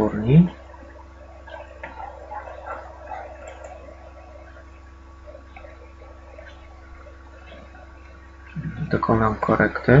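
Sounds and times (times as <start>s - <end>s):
faint indistinct sounds: 0.0s - 10.0s
steady low hum: 0.0s - 10.0s.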